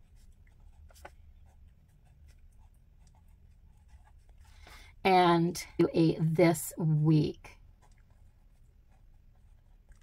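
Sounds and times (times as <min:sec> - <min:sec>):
pen scratching on paper: 0:00.0 - 0:04.7, 0:05.8 - 0:10.0.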